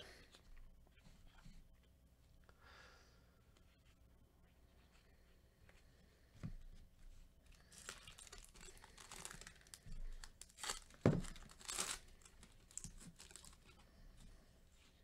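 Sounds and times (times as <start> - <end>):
foil wrapper tearing and crinkling: 7.7 - 13.8.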